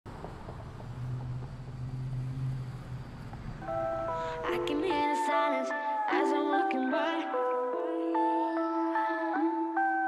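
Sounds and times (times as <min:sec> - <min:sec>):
low engine-like hum: 0:00.1 - 0:06.1
music with sustained tones: 0:03.6 - 0:10.0.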